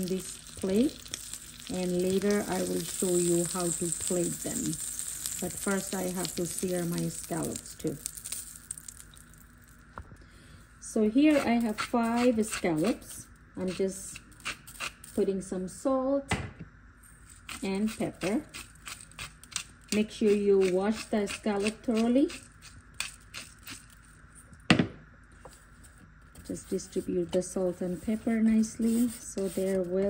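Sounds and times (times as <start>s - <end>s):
butter sizzling in skillet: 0.0s - 9.6s.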